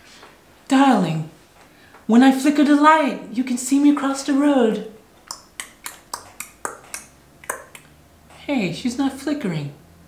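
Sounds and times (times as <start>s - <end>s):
fingers snapping: 5.2s - 7.9s.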